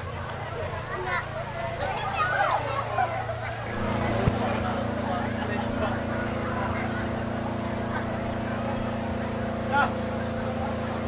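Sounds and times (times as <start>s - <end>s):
people's voices: 0.0s - 11.0s
machine drone: 2.6s - 11.0s.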